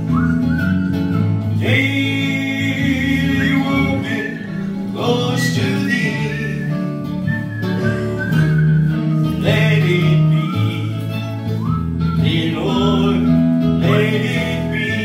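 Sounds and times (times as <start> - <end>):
keyboard bass notes and chords: 0.0 - 15.0
man singing into a microphone: 1.6 - 7.0, 9.2 - 11.5, 12.2 - 15.0.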